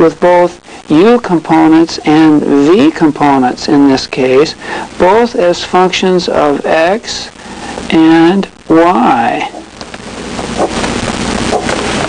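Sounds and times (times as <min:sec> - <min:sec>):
pen scratching on paper: 0:10.4 - 0:12.0.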